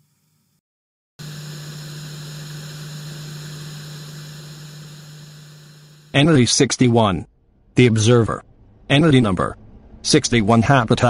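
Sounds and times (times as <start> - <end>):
low electrical hum: 1.2 - 6.6.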